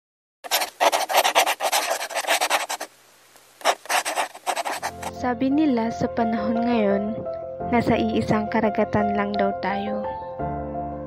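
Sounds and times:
pencil scribbling on paper: 0.4 - 2.9, 3.6 - 5.1.

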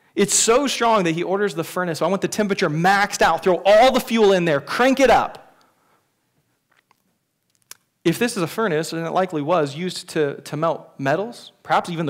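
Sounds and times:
lips parting click: 6.8 - 7.9
mouth clicks: 6.9 - 7.9.

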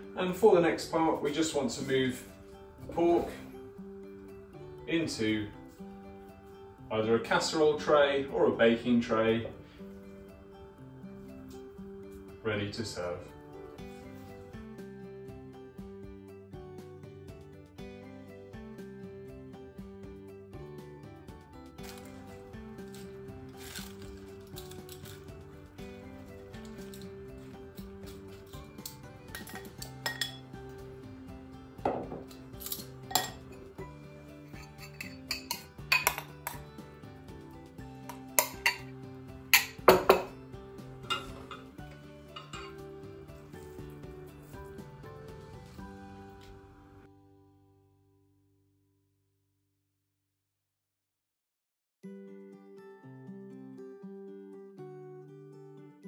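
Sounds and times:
background music: 0.0 - 47.9
glass bowls and tongs clinking: 28.8 - 30.5, 31.9 - 33.8, 34.4 - 36.6, 38.1 - 40.3, 41.0 - 43.0.

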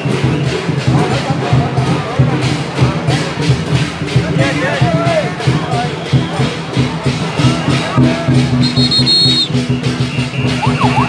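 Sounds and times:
drums beating steady rhythm: 0.0 - 11.0.

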